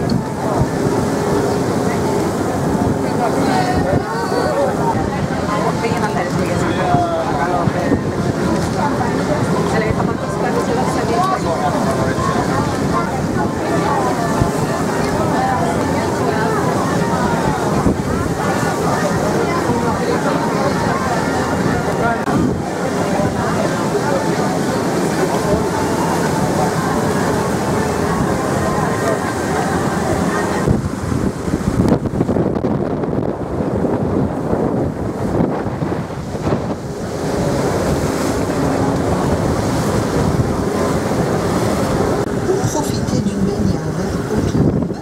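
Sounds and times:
boat engine drone: 0.0s - 45.0s
water rushing past hull: 0.0s - 45.0s
wind buffeting microphone: 0.0s - 45.0s.

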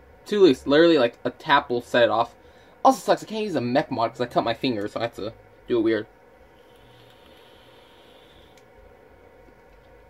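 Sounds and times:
vape atomizer hissing: 6.4s - 8.6s.

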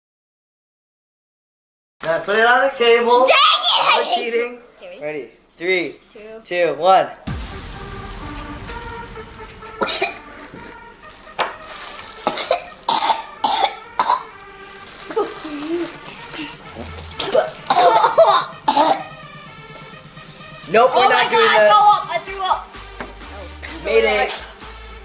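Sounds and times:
background music: 7.2s - 25.0s
children coughing and gagging: 9.8s - 10.3s, 12.2s - 14.4s, 15.0s - 19.2s
person vomiting: 16.4s - 19.1s.

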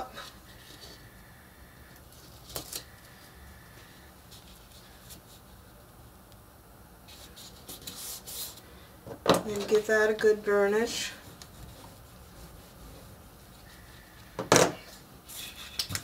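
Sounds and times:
soft paper rustles: 7.0s - 8.7s.

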